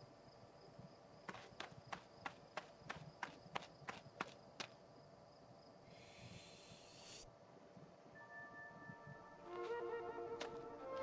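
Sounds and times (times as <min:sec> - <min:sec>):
light cartoon footstep taps: 0:10.4 - 0:11.0.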